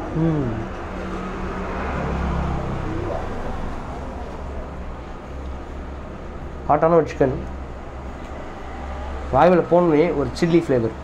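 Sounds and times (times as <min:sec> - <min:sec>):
road traffic rumble: 0:00.0 - 0:11.0
vehicle passing: 0:00.0 - 0:11.0.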